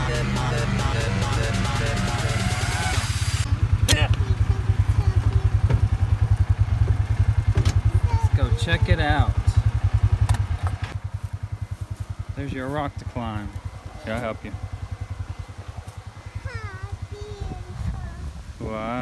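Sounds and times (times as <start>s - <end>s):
background music: 0.0s - 3.4s
engine idling with fast pulse: 0.0s - 19.0s.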